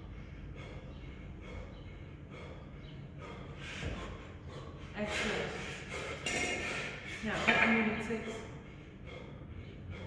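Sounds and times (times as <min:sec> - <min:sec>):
man breathing hard: 0:00.0 - 0:10.0.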